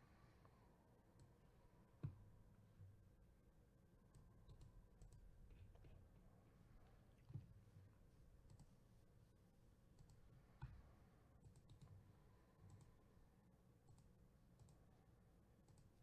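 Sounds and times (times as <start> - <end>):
faint computer mouse clicks: 4.1 - 6.0, 8.4 - 8.8, 9.9 - 13.0, 13.8 - 14.9, 15.6 - 16.0.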